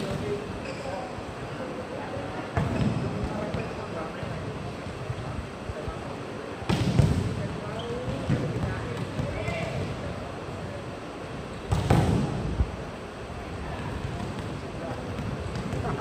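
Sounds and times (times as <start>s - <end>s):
murmur of voices: 0.0s - 16.0s.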